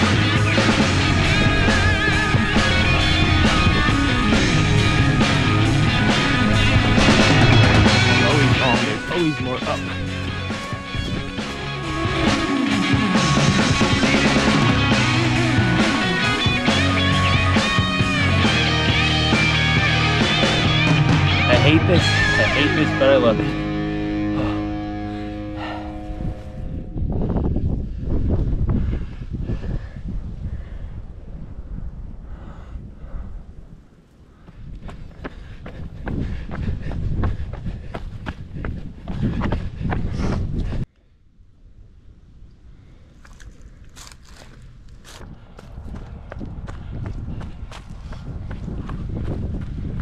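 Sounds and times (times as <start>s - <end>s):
background music: 0.0s - 26.8s
low rumbling microphone noise: 0.0s - 50.0s
footsteps on dirt and rock trail: 5.8s - 13.0s, 34.4s - 40.8s, 43.2s - 50.0s.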